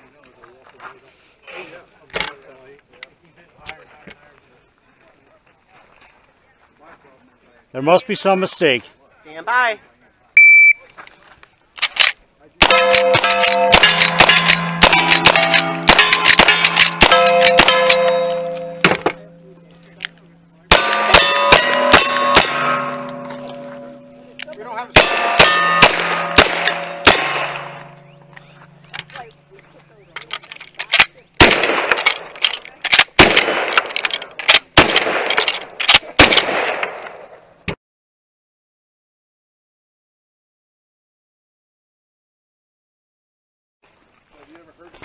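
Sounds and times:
revolver gunshots: 12.6 - 19.3, 20.6 - 24.3, 24.9 - 29.2, 31.0 - 37.3
rifle gunshots: 12.6 - 19.3, 20.7 - 24.3, 24.9 - 29.2, 30.9 - 37.3
steel plates ringing: 12.6 - 29.6.

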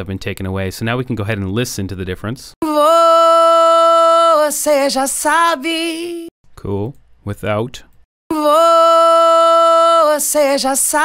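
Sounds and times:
solo singing voice: 8.3 - 11.0.

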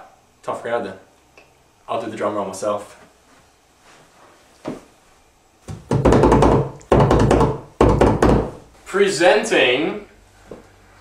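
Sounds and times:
hand drum roll on wooden box: 5.7 - 8.6.

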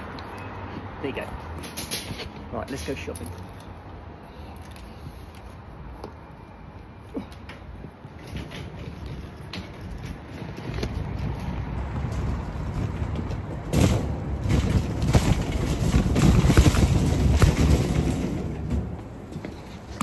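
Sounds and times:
trolley wheels rumbling: 7.2 - 20.0.

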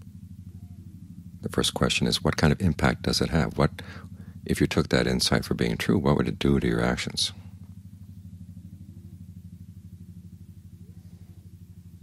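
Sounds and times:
low pulsing mechanical hum: 0.0 - 12.0.

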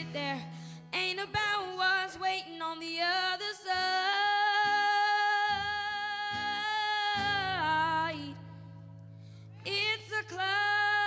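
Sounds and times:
acoustic guitar strumming: 0.0 - 2.4, 3.8 - 11.0.

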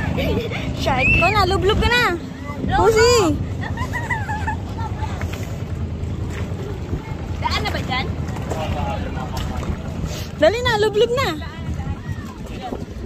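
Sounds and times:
wind noise on microphone: 0.0 - 3.8, 5.0 - 13.0
boat engine droning: 0.0 - 13.0.

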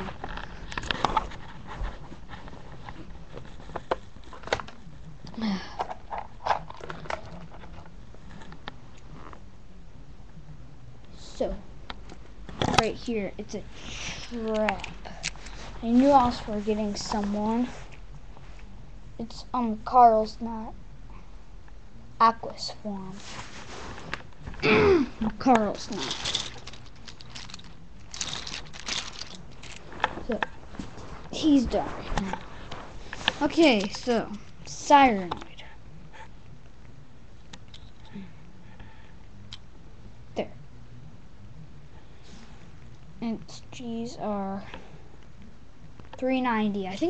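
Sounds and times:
plastic toys clicking and rattling: 25.6 - 29.9.

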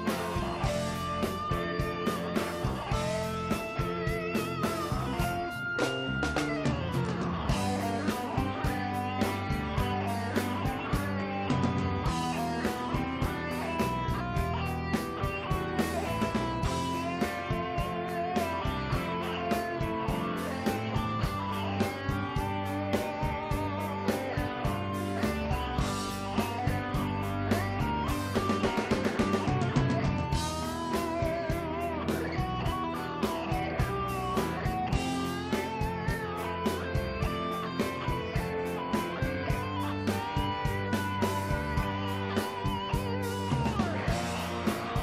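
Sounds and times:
bass guitar: 0.0 - 45.0
electric guitars: 0.0 - 45.0
keyboards: 0.0 - 45.0
steady drum beat: 0.0 - 45.0.

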